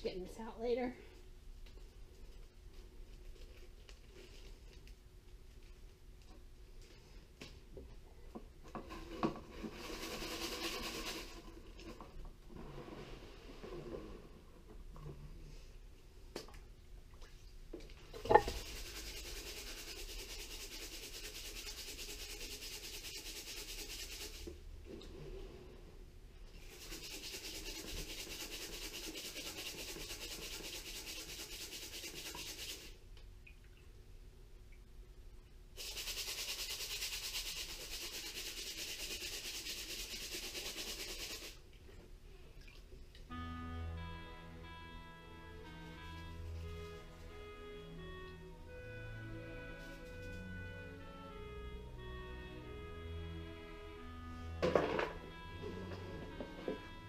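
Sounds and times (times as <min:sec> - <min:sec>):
water and gravel hissing in strainer: 0:09.0 - 0:11.7, 0:18.3 - 0:24.5, 0:26.6 - 0:33.0, 0:35.8 - 0:41.6.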